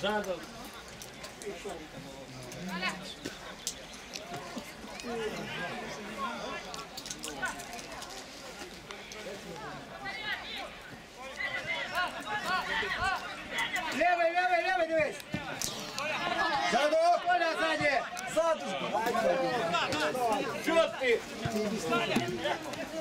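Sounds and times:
men talking and calling out: 0.0 - 23.0.

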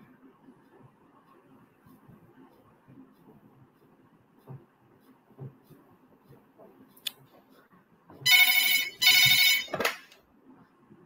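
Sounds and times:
buzzy telephone ringtone: 8.3 - 9.8.

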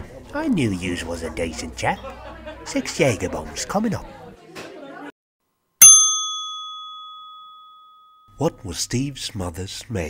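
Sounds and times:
faint pub chatter: 0.0 - 5.1
small bell ding: 5.8 - 8.4.

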